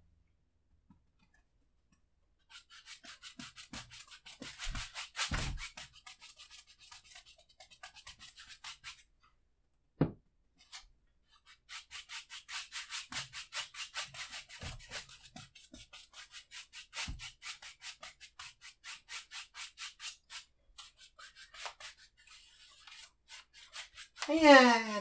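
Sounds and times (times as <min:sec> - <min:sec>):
bristle brush scrubbing canvas: 0:02.5 - 0:09.0, 0:11.4 - 0:25.0.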